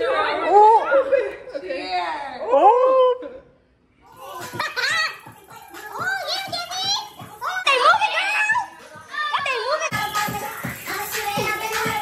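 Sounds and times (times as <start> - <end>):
music with steady beat: 4.1 - 12.0.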